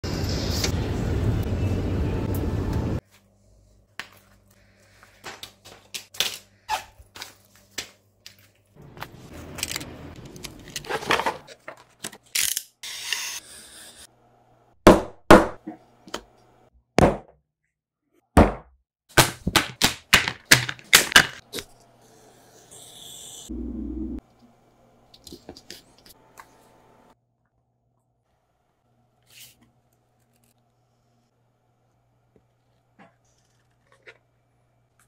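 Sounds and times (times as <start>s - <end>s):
scraping and handling noise: 7.0s - 12.3s.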